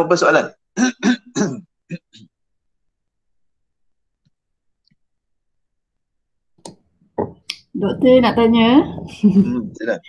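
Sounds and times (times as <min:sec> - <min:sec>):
person clearing throat: 0:00.8 - 0:02.3.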